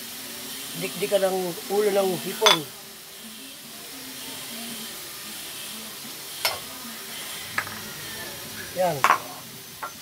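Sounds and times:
vegetables sizzling in wok: 0:00.0 - 0:10.0.

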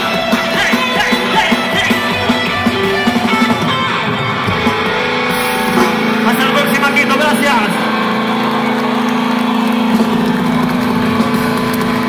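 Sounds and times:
large crowd noise: 0:00.0 - 0:12.0.

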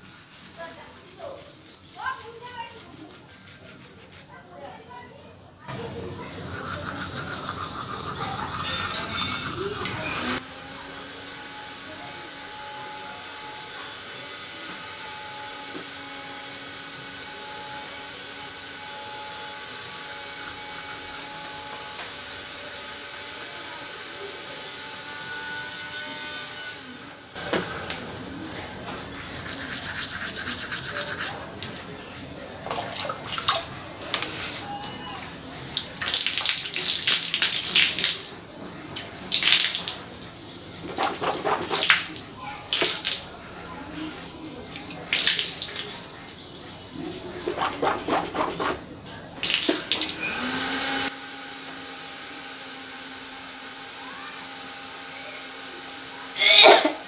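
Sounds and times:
toothbrush scrubbing teeth: 0:00.2 - 0:04.5, 0:06.3 - 0:09.8, 0:29.3 - 0:31.4.

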